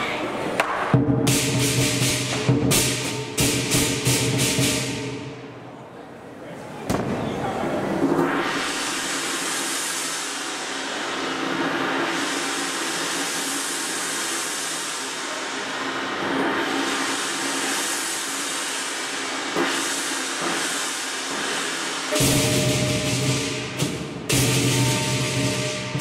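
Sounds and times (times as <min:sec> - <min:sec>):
loud drum hit: 0:00.6 - 0:05.4, 0:06.9 - 0:07.6, 0:22.2 - 0:26.0
shimmering cymbals: 0:01.3 - 0:05.6, 0:08.2 - 0:26.0.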